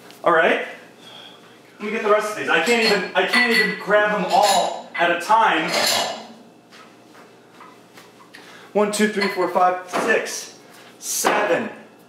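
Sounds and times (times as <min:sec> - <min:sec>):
drinking glasses clinking: 0:02.5 - 0:06.3, 0:09.1 - 0:09.5.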